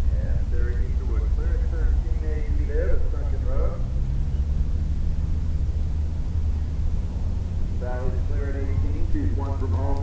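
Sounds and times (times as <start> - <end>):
faint steady hum: 0.0 - 10.0
low rumble: 0.0 - 10.0.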